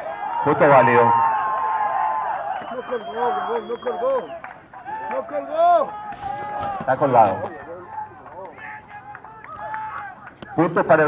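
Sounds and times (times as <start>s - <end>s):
distant shouting voices: 0.0s - 11.0s.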